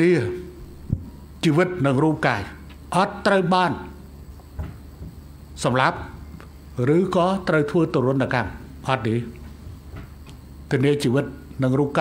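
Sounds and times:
man speaking into a microphone: 0:00.0 - 0:00.6, 0:01.4 - 0:04.0, 0:06.8 - 0:09.4, 0:10.7 - 0:12.0.

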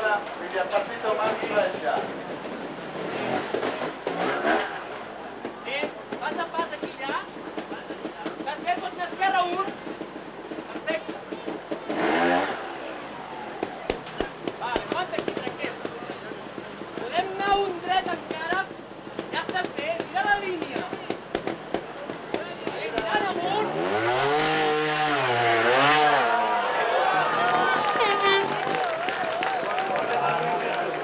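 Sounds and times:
people talking and calling: 0:00.0 - 0:31.0
motorcycle engine revving: 0:01.1 - 0:28.8.

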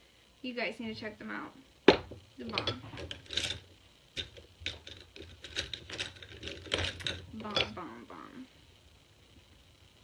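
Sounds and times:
handling rubbing and scratching: 0:02.4 - 0:07.8.

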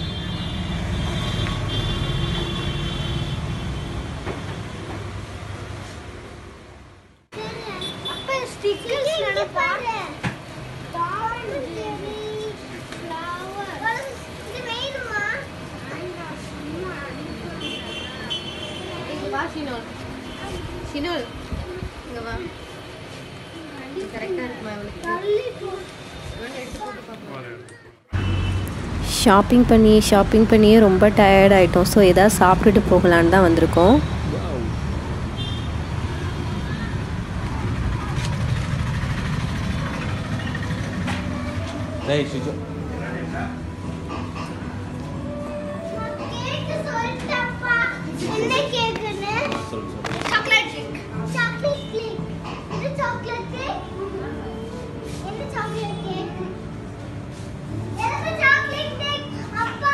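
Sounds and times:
children talking and playing: 0:07.3 - 0:34.2, 0:35.9 - 0:59.9
motor vehicle engine rumble: 0:28.2 - 0:47.4.

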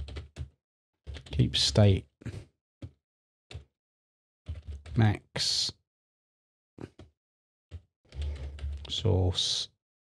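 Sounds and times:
typing on computer keyboard: 0:00.0 - 0:01.3, 0:02.4 - 0:03.7, 0:04.5 - 0:05.0, 0:07.7 - 0:09.0.

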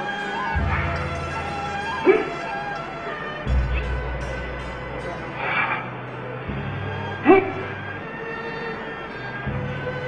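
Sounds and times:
background music with sustained tones: 0:00.0 - 0:10.0.

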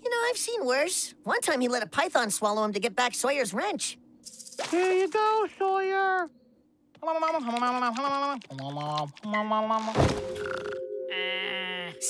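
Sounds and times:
cartoon character vocalizing: 0:11.1 - 0:12.0.

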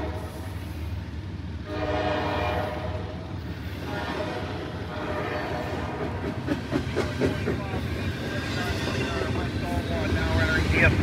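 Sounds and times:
steel wheels rumbling on rail: 0:00.0 - 0:11.0.

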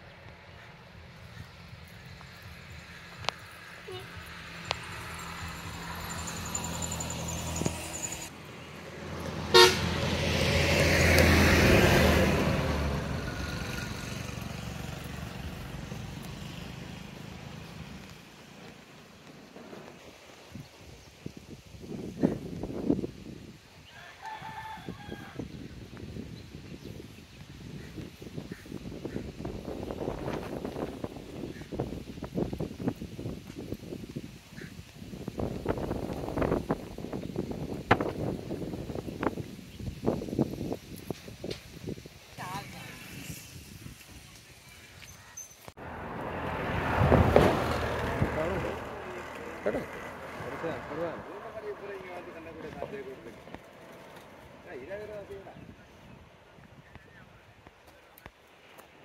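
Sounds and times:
vehicle passing by: 0:00.4 - 0:20.3, 0:45.7 - 0:56.4
wind on microphone: 0:20.4 - 0:45.0.

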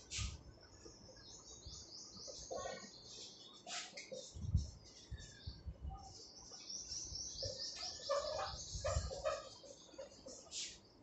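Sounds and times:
small bird calling: 0:01.0 - 0:11.0
marker writing on whiteboard: 0:07.8 - 0:10.9.

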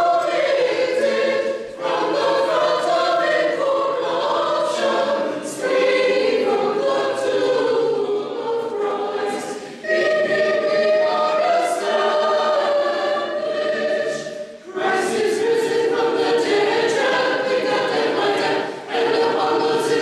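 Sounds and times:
church choir singing: 0:00.0 - 0:20.0.

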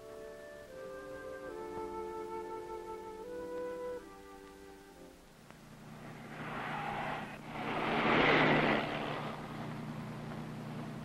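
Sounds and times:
low engine hum: 0:05.6 - 0:11.0
cars passing: 0:05.7 - 0:11.0.

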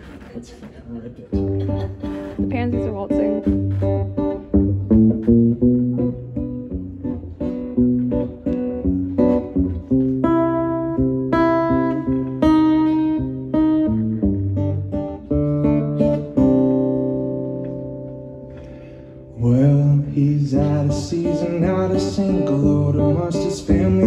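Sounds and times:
acoustic guitar chords: 0:01.3 - 0:24.0.

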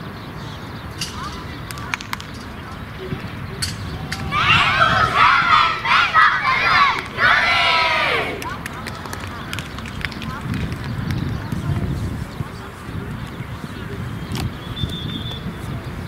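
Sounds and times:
children chanting in unison: 0:04.0 - 0:08.5.

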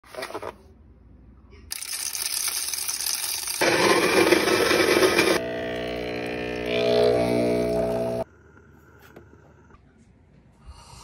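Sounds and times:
electric coffee grinder running: 0:03.4 - 0:08.2
espresso machine pump humming: 0:03.6 - 0:08.3.

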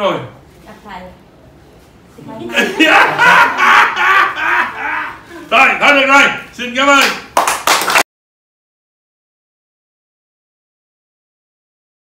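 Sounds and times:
woman laughing: 0:02.4 - 0:05.5
man laughing: 0:02.5 - 0:05.7.

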